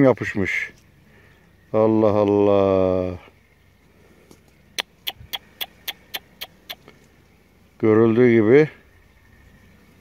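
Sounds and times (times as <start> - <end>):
animal chirping: 4.7 - 7.0.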